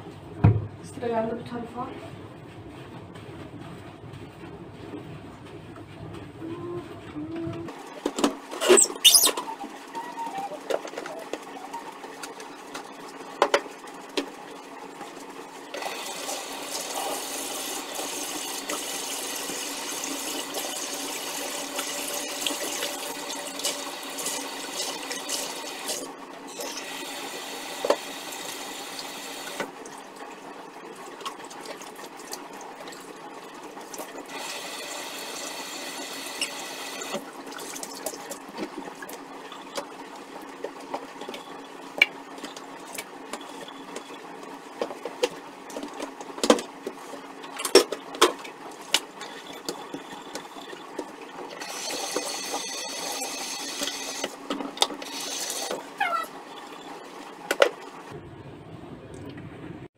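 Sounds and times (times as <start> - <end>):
tap water running: 15.7 - 30.0, 31.0 - 39.9, 49.0 - 56.8.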